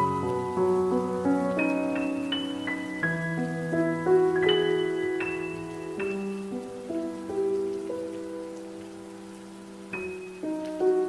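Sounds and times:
faint steady hiss: 0.0s - 11.0s
soft solo piano: 0.0s - 11.0s.

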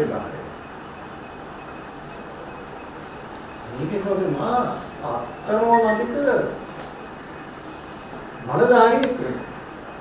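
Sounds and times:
room noise hiss: 0.0s - 10.0s.

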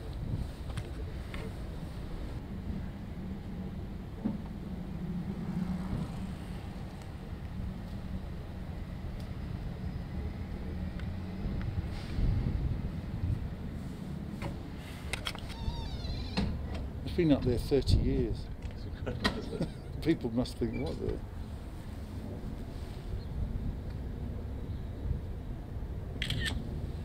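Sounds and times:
engine hum: 0.0s - 27.0s
road traffic rumble: 0.0s - 27.0s.

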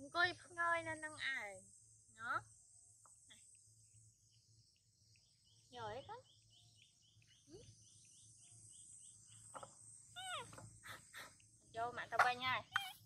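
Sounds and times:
insect chorus chirping: 0.0s - 13.0s.

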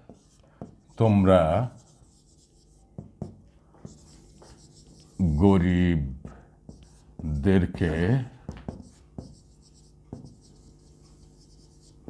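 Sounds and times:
marker pen writing on whiteboard: 0.0s - 5.4s, 6.2s - 12.0s.

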